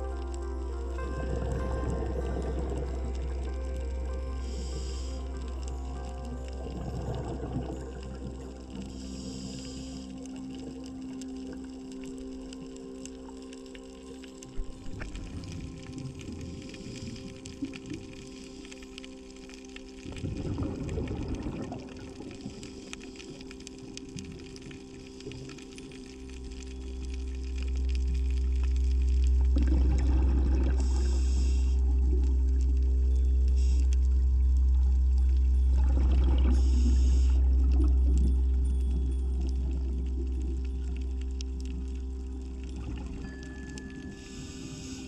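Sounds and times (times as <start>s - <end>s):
loud low drone: 0.0s - 10.0s
exhaled bubbles underwater: 0.0s - 19.0s, 19.8s - 45.0s
regulator hiss: 4.4s - 5.4s, 30.8s - 31.9s.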